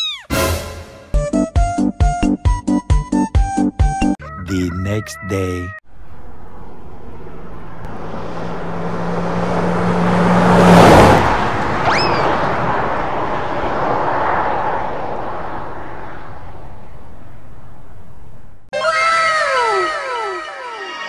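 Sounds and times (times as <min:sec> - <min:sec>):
motor vehicle passing by: 0:05.9 - 0:18.6
brief high squeal: 0:11.8 - 0:12.3.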